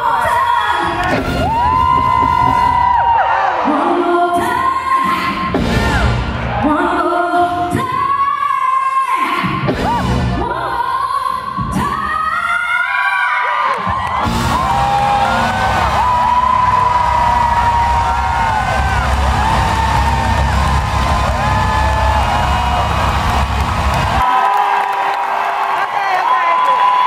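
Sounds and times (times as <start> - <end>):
crowd cheering and whooping: 0.2 - 4.0, 12.7 - 27.0
band playing heavy bass groove: 14.2 - 24.2.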